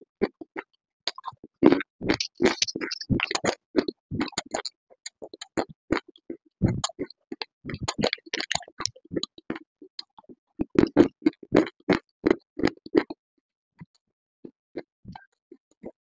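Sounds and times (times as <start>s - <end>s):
crunching and chewing clay: 0.2s - 13.2s.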